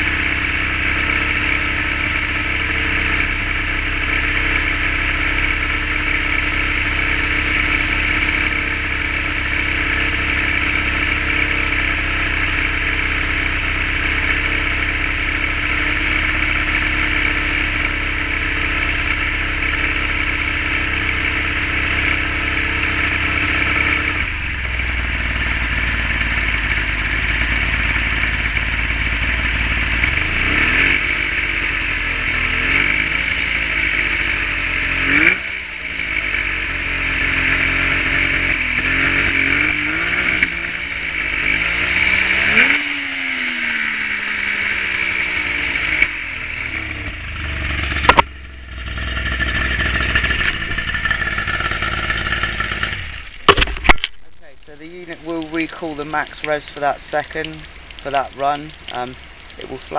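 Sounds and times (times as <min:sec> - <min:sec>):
outboard motor idling and revving: 0:00.0 - 0:59.9.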